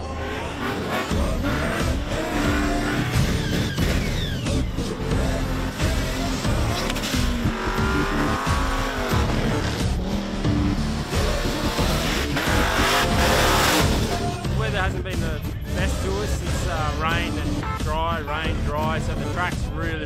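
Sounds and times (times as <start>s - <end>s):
background music: 0.0s - 20.0s
car engines revving hard: 0.0s - 20.0s.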